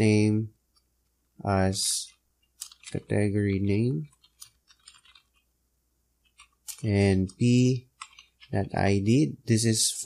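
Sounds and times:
man speaking: 0:00.0 - 0:00.6, 0:01.4 - 0:02.2, 0:02.8 - 0:04.2, 0:06.8 - 0:07.9, 0:08.5 - 0:10.0
keyboard keystrokes: 0:04.1 - 0:05.4, 0:08.0 - 0:08.5.

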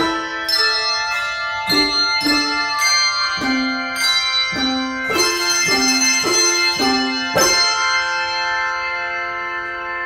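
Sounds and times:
handbell chord ringing: 0:00.0 - 0:09.4.

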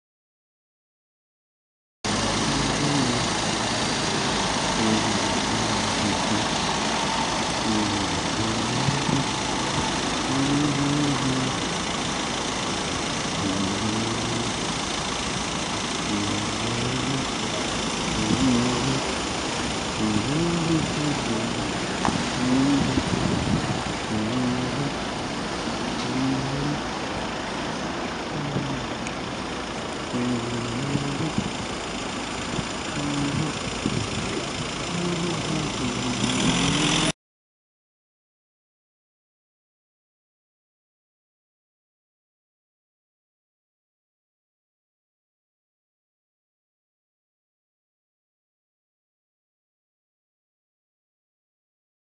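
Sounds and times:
street noise: 0:02.0 - 0:37.2
car engines idling and moving: 0:02.1 - 0:37.2.

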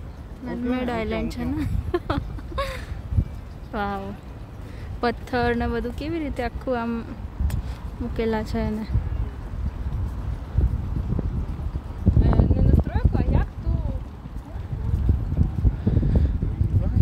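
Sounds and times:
people's voices: 0:00.0 - 0:07.2
wind rumble: 0:00.0 - 0:17.0.

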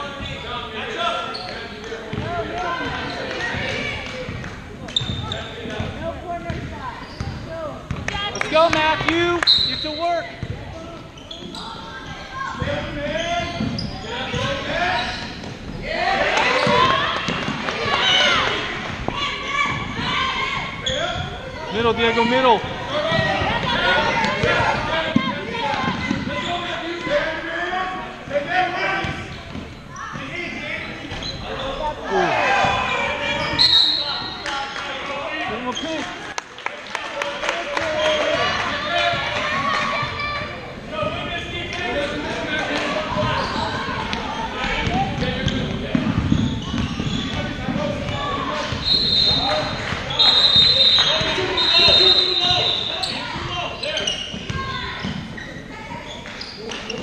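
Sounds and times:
spectators talking and calling out: 0:00.0 - 0:57.0.

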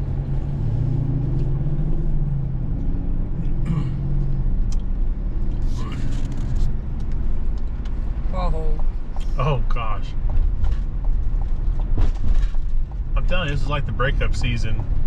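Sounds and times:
road noise: 0:00.0 - 0:15.0
truck engine drone: 0:00.0 - 0:15.0.

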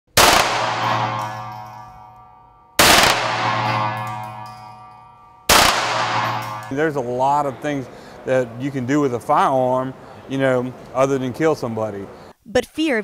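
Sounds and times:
pistol shots ringing indoors: 0:00.1 - 0:07.2.

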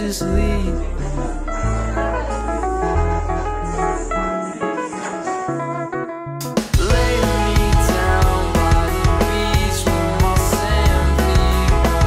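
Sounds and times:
deep bass line: 0:00.0 - 0:04.3, 0:06.8 - 0:12.0
plucked guitar notes: 0:00.0 - 0:12.0.

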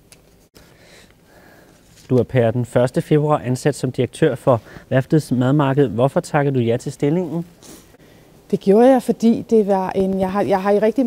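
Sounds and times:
faint breathy sniff: 0:04.6 - 0:04.9, 0:07.6 - 0:08.3.

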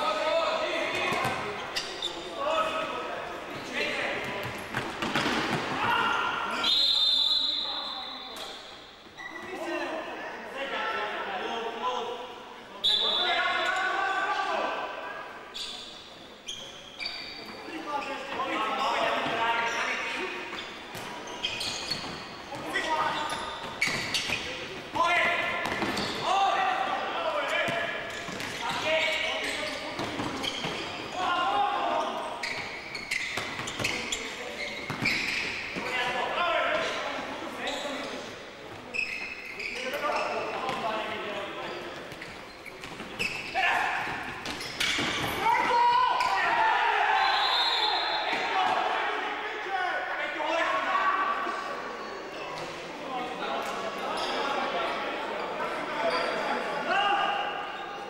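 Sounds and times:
voices calling and shouting: 0:05.5 - 0:58.0.

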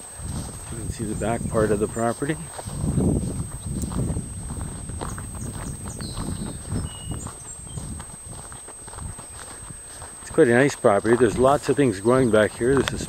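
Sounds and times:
footsteps on dry grass: 0:00.0 - 0:13.0.

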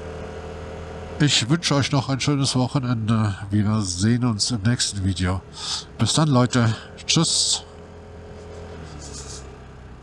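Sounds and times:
scooter engine running: 0:05.4 - 0:10.0.

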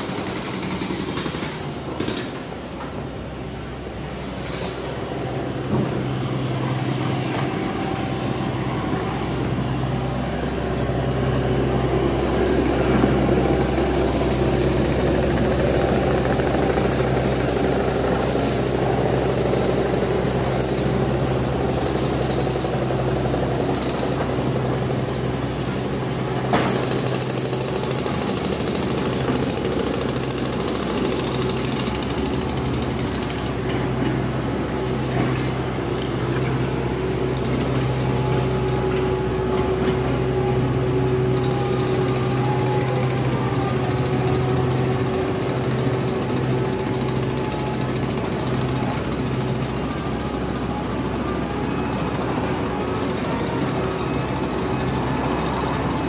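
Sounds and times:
machine hum with rattle: 0:00.0 - 0:56.0.

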